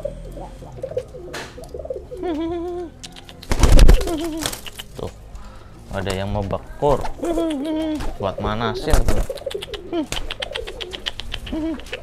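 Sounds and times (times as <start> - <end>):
pigeons cooing: 0.0 - 5.0, 7.0 - 12.0.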